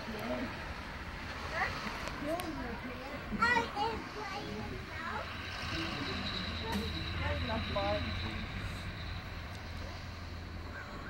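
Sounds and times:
low engine rumble: 0.0s - 11.0s.

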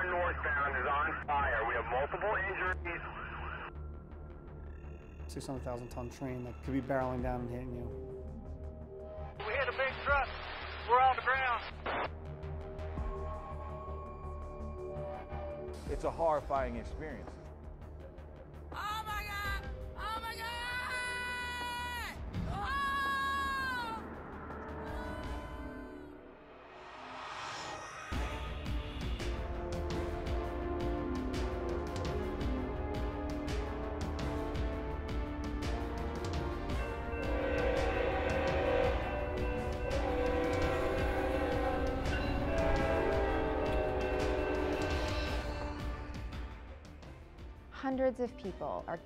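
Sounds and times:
dramatic soundtrack music: 0.0s - 49.0s
high sustained music notes: 27.0s - 47.5s
locomotive air horn blasts: 36.7s - 46.7s.

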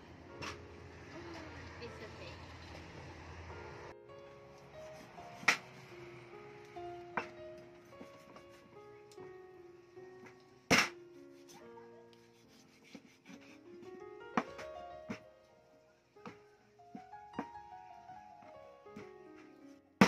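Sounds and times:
background music: 0.0s - 20.0s
cleaver striking meat on board: 10.7s - 11.0s.

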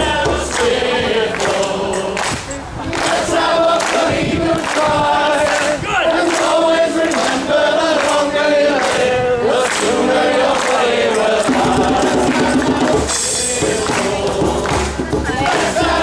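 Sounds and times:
hand drum: 0.0s - 0.8s, 11.5s - 16.0s
men singing folk song together: 0.0s - 16.0s.

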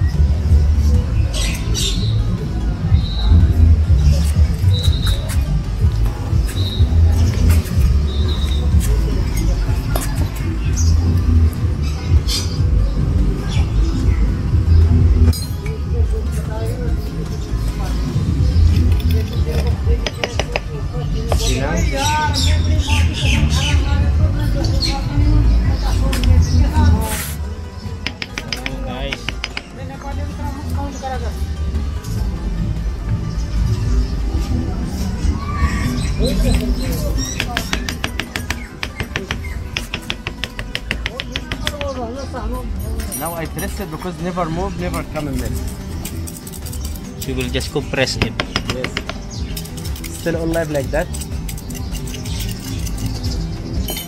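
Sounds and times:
tool tapping on glass bottle: 19.0s - 20.7s, 28.0s - 29.7s, 37.4s - 42.0s, 48.2s - 51.2s
glass bottle clinking: 53.8s - 54.0s.

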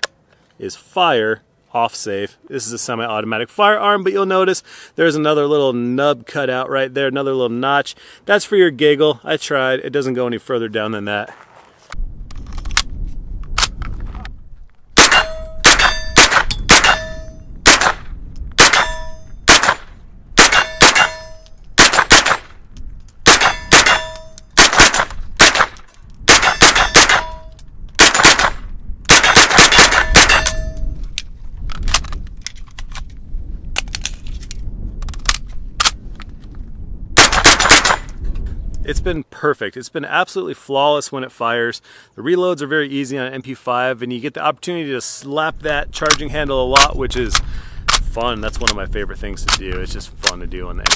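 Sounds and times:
steel targets ringing: 15.0s - 17.5s, 18.6s - 19.8s, 20.5s - 21.6s, 23.4s - 24.6s, 29.9s - 31.0s
carbine gunshots: 15.0s - 22.6s, 23.2s - 30.7s, 37.2s - 38.1s.

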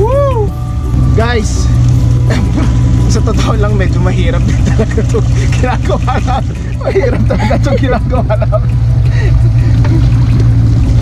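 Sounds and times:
outboard motor running: 0.0s - 11.0s
person laughing: 2.2s - 2.8s, 4.5s - 10.1s.

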